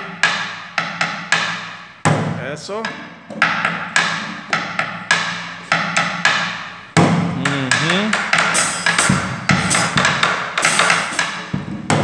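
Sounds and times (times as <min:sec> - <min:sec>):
drum beaten with sticks: 0:00.0 - 0:12.0
sticks clicking on wooden shell: 0:07.5 - 0:09.0.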